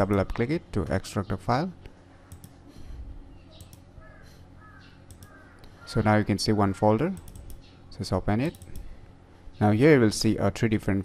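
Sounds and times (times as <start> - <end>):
faint steady hum: 0.0 - 11.0
computer mouse clicks: 2.3 - 2.6, 3.6 - 3.9, 5.1 - 5.8, 7.2 - 7.7, 8.4 - 8.9
bird calling: 3.3 - 7.0.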